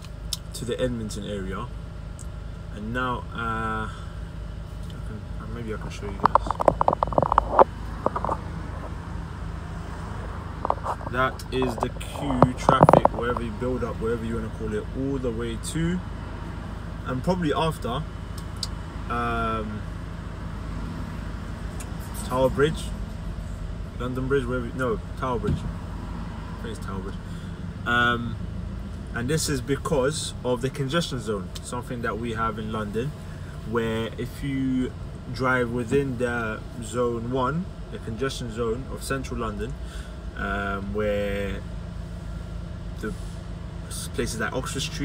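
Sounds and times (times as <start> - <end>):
car engine rumble inside cabin: 0.0 - 45.0.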